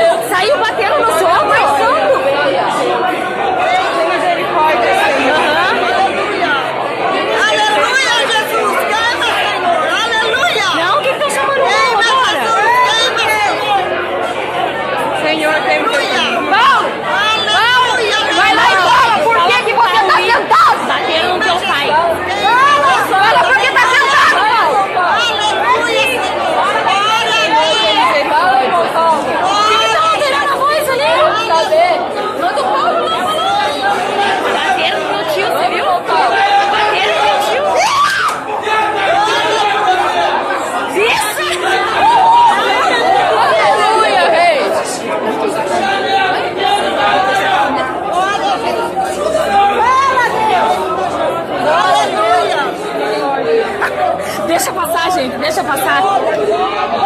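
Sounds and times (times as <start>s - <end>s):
crowd talking and shouting: 0.0s - 57.0s.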